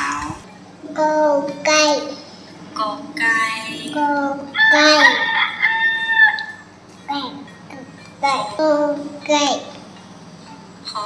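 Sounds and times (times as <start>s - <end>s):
rooster crowing: 4.6s - 6.7s.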